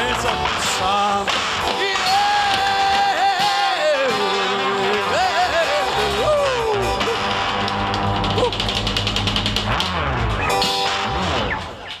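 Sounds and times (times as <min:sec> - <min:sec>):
person singing: 0:00.0 - 0:07.6
drums and cymbals: 0:00.0 - 0:12.0
rock and roll band playing: 0:00.0 - 0:12.0.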